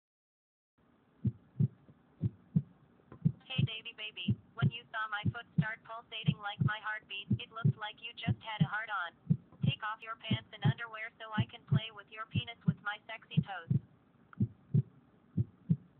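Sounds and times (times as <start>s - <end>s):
heartbeat thumps: 1.2s - 15.9s
person speaking: 3.4s - 13.7s.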